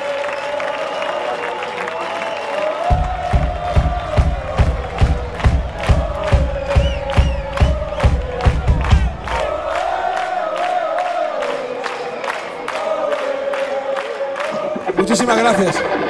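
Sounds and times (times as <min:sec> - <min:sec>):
crowd noise: 0:00.0 - 0:16.0
drum beat: 0:02.9 - 0:10.8.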